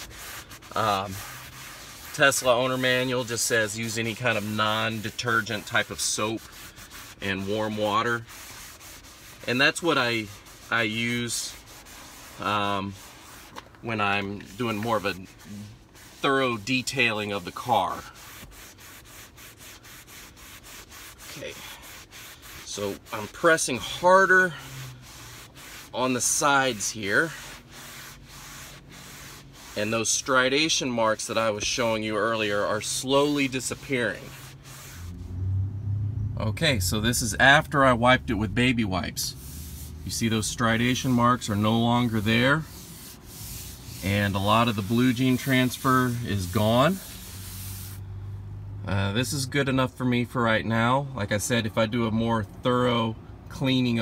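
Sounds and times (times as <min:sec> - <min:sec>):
wipe scrubbing leather seat: 0:00.0 - 0:35.4, 0:36.9 - 0:48.0.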